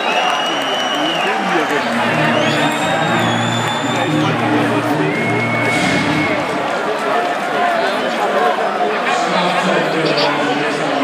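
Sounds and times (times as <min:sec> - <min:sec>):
crowd din of many voices: 0:00.0 - 0:11.0.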